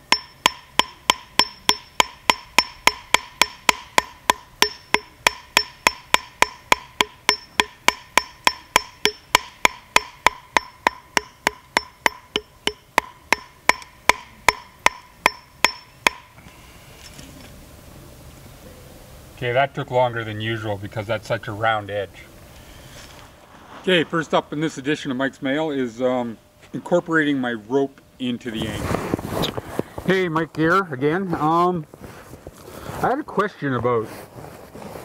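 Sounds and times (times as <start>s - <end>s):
hammer striking webbing on rock: 0.0s - 16.3s.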